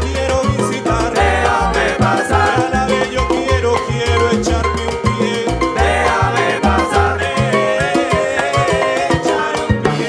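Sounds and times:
low bass line: 0:00.0 - 0:08.9
salsa band playing: 0:00.0 - 0:10.0.

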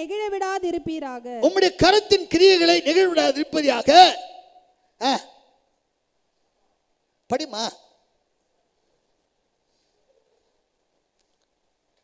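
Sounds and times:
man speaking into a microphone: 0:01.4 - 0:05.4, 0:07.3 - 0:08.0.

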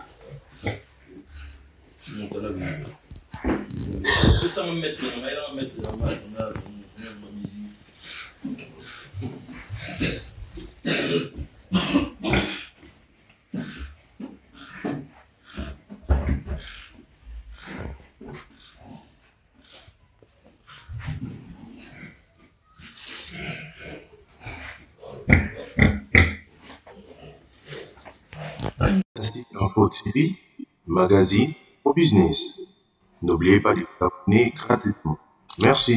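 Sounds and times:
pigs grunting: 0:00.0 - 0:31.4
man speaking: 0:04.0 - 0:07.8, 0:29.2 - 0:32.6, 0:33.2 - 0:35.9.

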